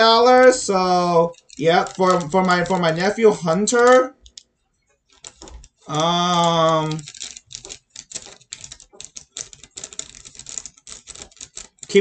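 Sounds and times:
paper crackling and rustling: 0.0 - 12.0.

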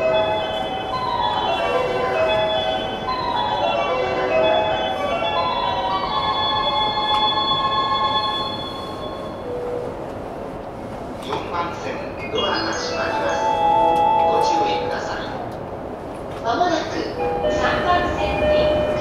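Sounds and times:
train running rumble: 0.0 - 19.0.

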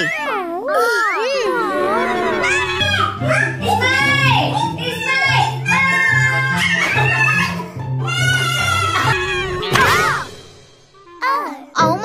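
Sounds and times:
cartoonish sliding voices: 0.0 - 5.0
drawn-out vocal wail: 1.2 - 10.2.

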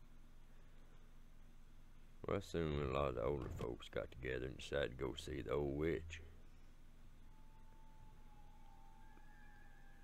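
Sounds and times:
low hum: 0.0 - 10.0
faint steady high tone: 4.4 - 10.0.

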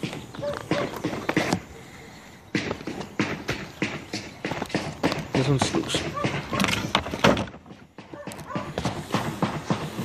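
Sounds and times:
knocks and clatter: 2.6 - 10.0
man talking: 5.3 - 6.2.

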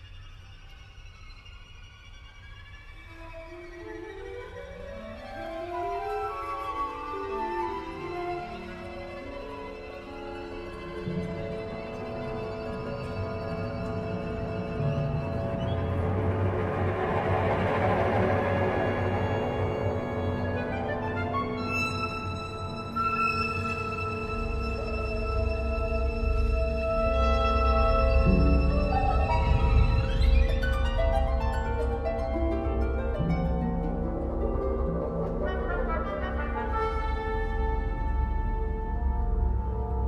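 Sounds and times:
orchestra playing slow classical music: 0.0 - 40.0.

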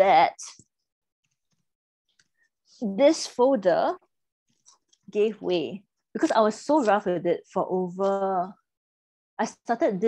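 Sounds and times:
woman speaking: 0.0 - 0.6, 2.8 - 4.1, 5.1 - 8.7, 9.4 - 10.0.

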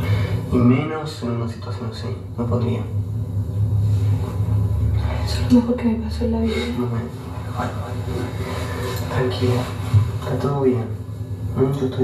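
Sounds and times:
low drone from tv speaker: 0.0 - 12.0.

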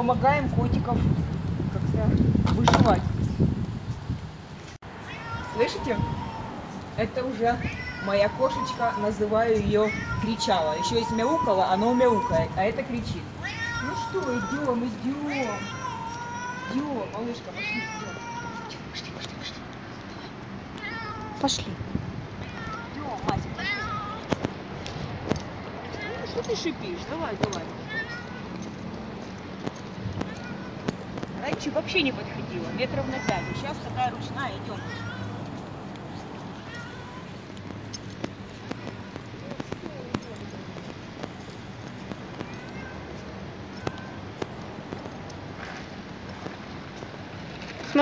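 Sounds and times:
footsteps on pavement: 0.0 - 48.0
steady outdoor hum: 0.0 - 48.0
cat meowing: 5.0 - 6.7, 7.4 - 21.5, 22.4 - 24.4, 25.9 - 26.5, 27.8 - 28.8, 30.1 - 31.0, 32.8 - 35.5, 36.5 - 37.6, 42.3 - 44.4.

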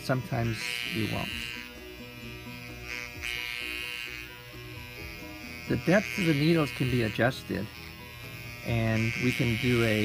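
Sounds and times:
background music: 0.0 - 10.0
electric pen buzzing: 0.0 - 10.0.

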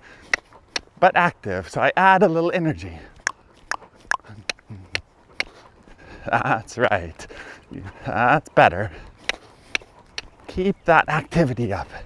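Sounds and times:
horse hooves trotting: 0.0 - 12.0.

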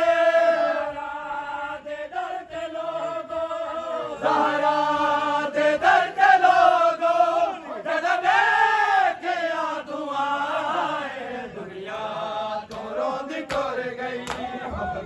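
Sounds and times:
men chanting a lament: 0.0 - 15.0.

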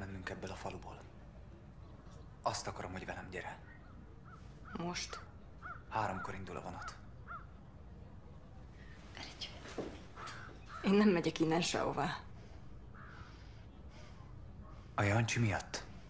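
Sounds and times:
man and woman talking: 0.0 - 1.2, 2.3 - 3.8, 4.7 - 7.0, 14.6 - 15.9
bird calls: 1.8 - 7.7, 9.2 - 11.7, 12.8 - 14.9.

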